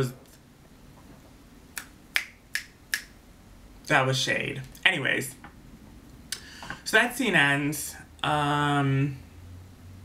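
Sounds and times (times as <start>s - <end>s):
finger snaps: 1.8s - 3.2s
person speaking: 3.8s - 5.4s, 6.8s - 9.2s.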